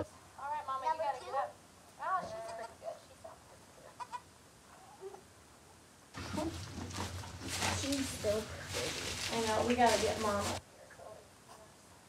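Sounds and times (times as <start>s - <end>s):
wood shavings rustling: 6.2s - 10.6s.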